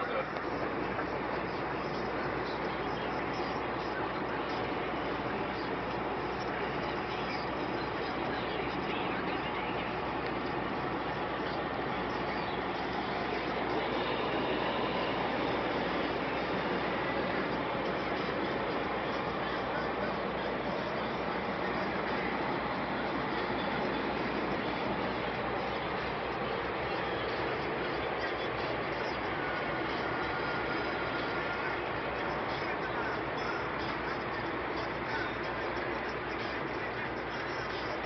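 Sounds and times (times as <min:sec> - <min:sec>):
low uneven rumble: 0:00.0 - 0:38.0
tyres and wind road noise: 0:00.0 - 0:38.0.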